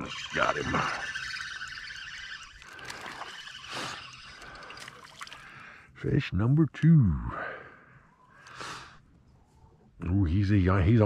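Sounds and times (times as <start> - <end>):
water splashing and trickling: 0.0 - 5.8
fish thrashing at the surface: 0.2 - 5.6.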